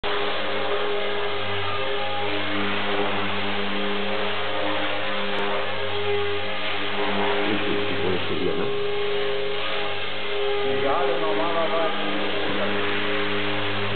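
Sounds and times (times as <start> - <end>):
electric motor whine: 0.0 - 13.9
spinning rotor hum: 0.0 - 13.9.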